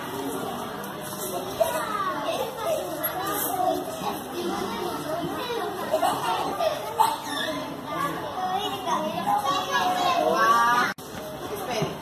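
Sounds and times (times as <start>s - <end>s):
young children talking and playing: 0.0s - 12.0s.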